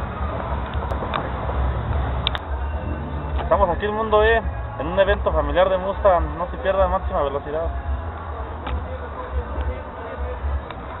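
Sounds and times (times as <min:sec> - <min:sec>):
faint background voices: 0:00.0 - 0:11.0
steady low rumble: 0:00.0 - 0:11.0.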